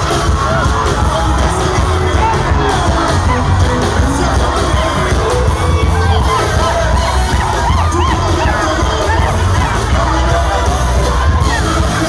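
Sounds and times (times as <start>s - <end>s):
live music with heavy bass: 0.0s - 12.0s
stadium crowd cheering and shouting: 0.0s - 12.0s.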